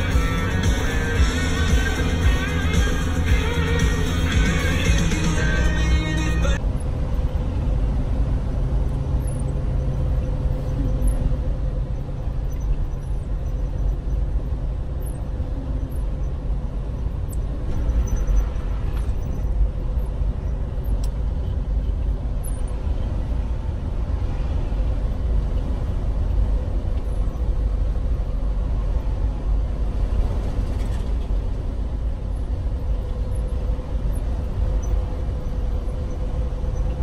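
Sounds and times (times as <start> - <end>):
constant droning hum: 0.0 - 37.0
vehicle rumble from inside cab: 0.0 - 37.0.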